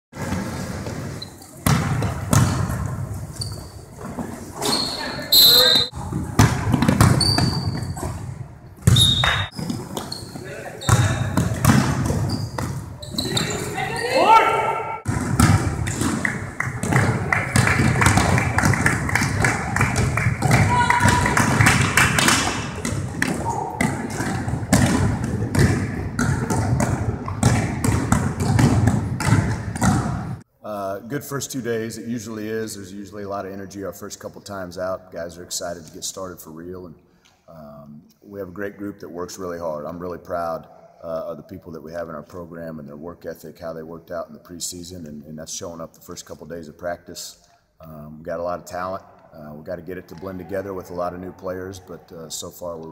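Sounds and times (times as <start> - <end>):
balls hitting rim and backboard: 0.2 - 4.8, 5.6 - 13.8, 15.0 - 30.4
basketball bouncing on hardwood: 1.6 - 2.9, 6.4 - 10.1, 10.9 - 12.9, 15.1 - 30.4
players' voices: 9.2 - 28.3
hubbub of practice: 15.8 - 27.3.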